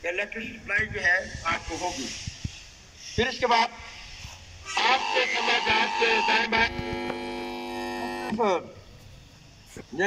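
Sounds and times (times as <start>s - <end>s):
man speaking over loudspeaker: 4.8s - 6.8s.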